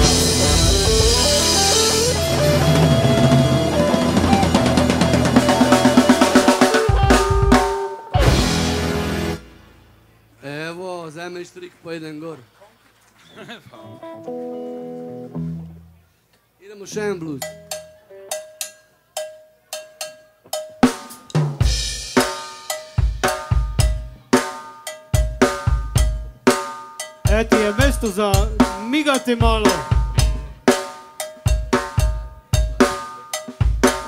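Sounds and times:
instrument notes: 0:00.0 - 0:09.5, 0:22.6 - 0:34.0
kick drum and snare beat: 0:27.3 - 0:30.4.

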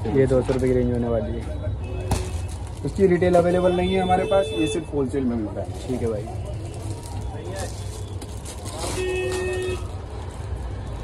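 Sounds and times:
traffic rumble: 0:00.0 - 0:11.0
faint indistinct voices: 0:04.7 - 0:11.0.

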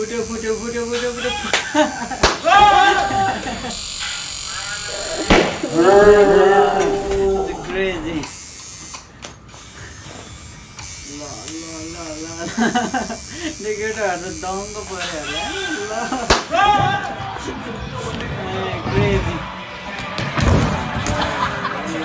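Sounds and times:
tattoo machine buzzing: 0:00.0 - 0:17.2
loud laughter: 0:01.1 - 0:03.8, 0:04.7 - 0:08.0, 0:12.4 - 0:13.6, 0:15.2 - 0:17.5, 0:21.0 - 0:22.0.

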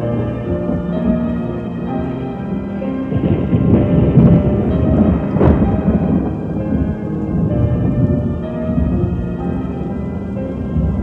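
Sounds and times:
dark keyboard chords: 0:00.0 - 0:11.0
rain: 0:00.0 - 0:11.0
rumbling thunder: 0:00.0 - 0:11.0
sharp thunder crack: 0:02.6 - 0:11.0.

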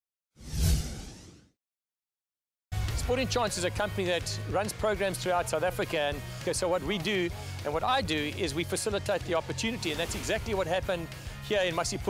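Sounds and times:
low rumble: 0:00.4 - 0:01.4
whoosh: 0:00.4 - 0:01.6.

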